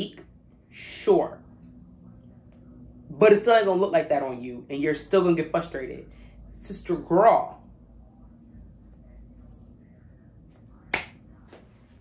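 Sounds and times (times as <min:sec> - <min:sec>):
finger snap: 0:10.9 - 0:11.6.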